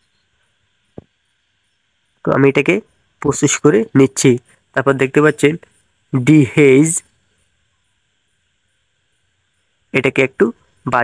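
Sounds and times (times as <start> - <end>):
faint background hiss: 0.0 - 11.0
person narrating: 2.2 - 7.1, 10.0 - 11.0.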